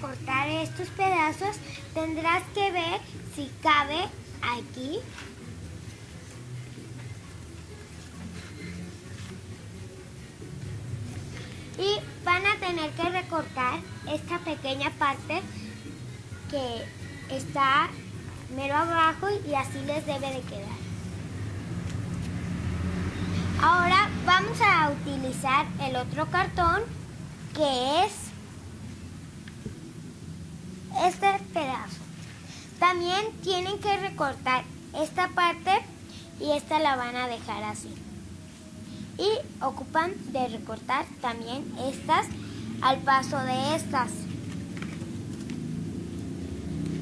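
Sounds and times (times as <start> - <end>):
paper rustling: 5.0 - 6.4, 9.1 - 9.4, 44.3 - 45.7.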